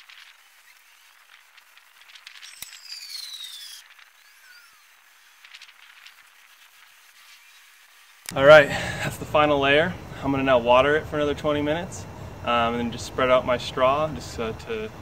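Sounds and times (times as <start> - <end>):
rake scratching soil: 0.0 - 8.6
falling high-pitched whistle: 2.4 - 5.5.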